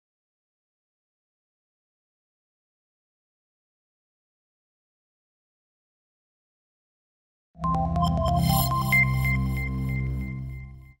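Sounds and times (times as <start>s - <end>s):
high chime: 7.6s - 10.5s
bright plucked notes: 7.6s - 10.6s.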